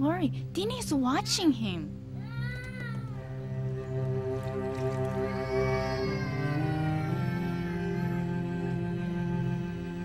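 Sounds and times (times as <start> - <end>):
low cello notes: 1.7 - 10.0.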